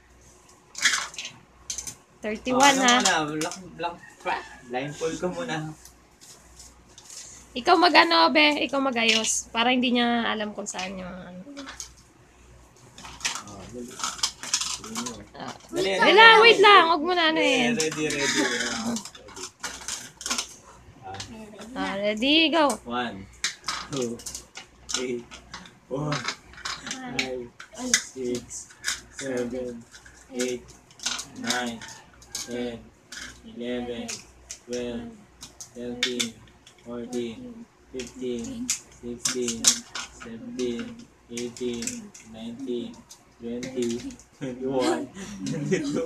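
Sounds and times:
person speaking: 2.2s - 5.6s, 7.6s - 11.7s, 14.8s - 19.2s, 21.0s - 23.2s, 26.8s - 28.6s, 33.5s - 35.2s, 35.8s - 46.0s
plastic scraping rustle: 12.8s - 15.3s, 17.8s - 20.6s.

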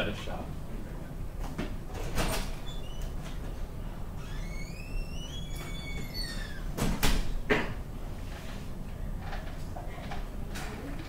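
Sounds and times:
falling squeak: 4.2s - 6.7s
rising squeak: 4.2s - 6.7s.

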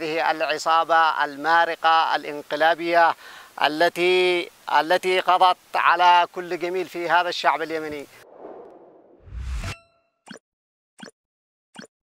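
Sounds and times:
rising whoosh: 8.2s - 9.8s.

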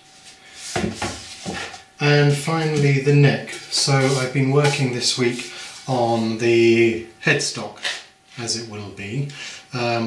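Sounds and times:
soft wooden knocks and rubs: 0.7s - 1.8s.

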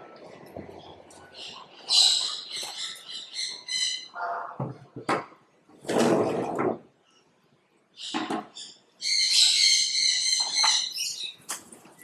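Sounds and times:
noisy scrape or rustle: 5.8s - 6.8s.

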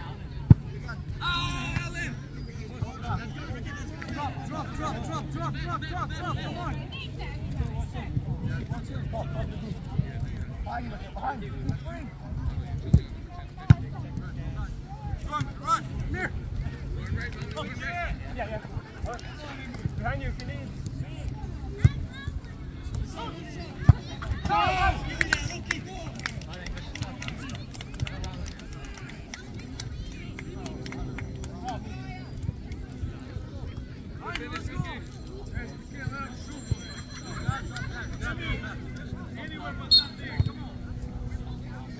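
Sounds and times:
players' voices: 0.0s - 41.9s.

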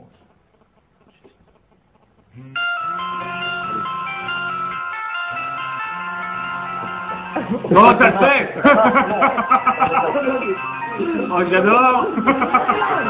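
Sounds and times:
phone ringtone melody: 2.5s - 13.0s.

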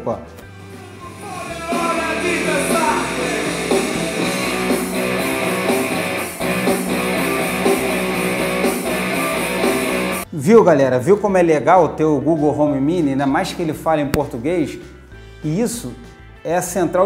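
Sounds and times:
music from smart speaker: 0.4s - 10.4s.

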